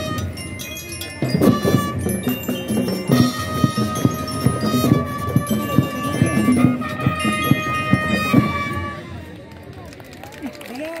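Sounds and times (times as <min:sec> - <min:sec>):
crowd talking outdoors: 0:00.0 - 0:11.0.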